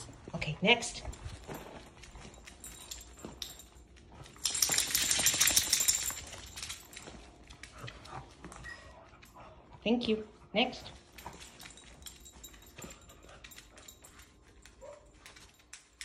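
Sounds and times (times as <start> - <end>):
dog claws clicking on hardwood floor: 2.0 - 8.4.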